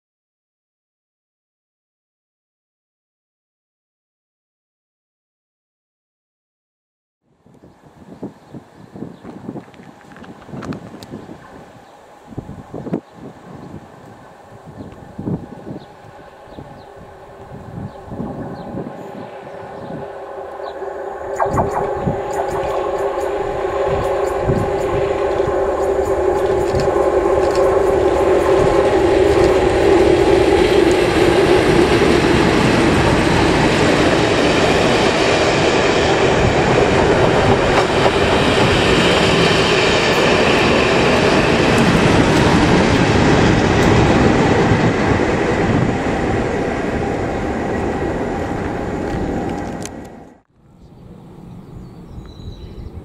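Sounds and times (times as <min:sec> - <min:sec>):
diesel locomotive engines: 0:07.4 - 0:53.0
train coaches passing: 0:08.6 - 0:50.4.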